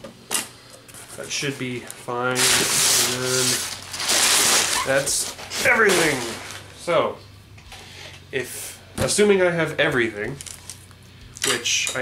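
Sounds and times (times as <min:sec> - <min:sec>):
packing paper crinkling in box: 0:02.3 - 0:06.8.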